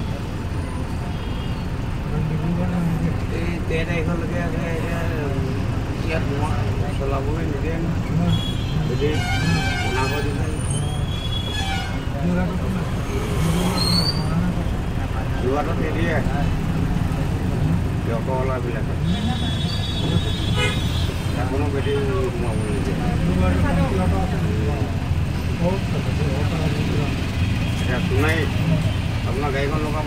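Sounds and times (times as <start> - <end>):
traffic engine rumble: 0.0 - 30.0
voices: 0.0 - 30.0
people talking: 2.1 - 11.2, 12.1 - 16.6, 17.6 - 30.0.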